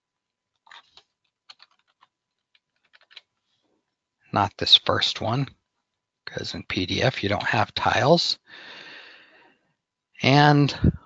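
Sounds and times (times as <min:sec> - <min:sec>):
computer keyboard keystrokes: 0:00.6 - 0:03.3.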